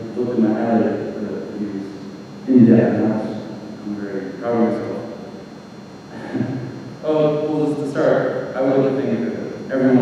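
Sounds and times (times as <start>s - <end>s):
soft vocal hesitation sound: 6.1s - 10.0s.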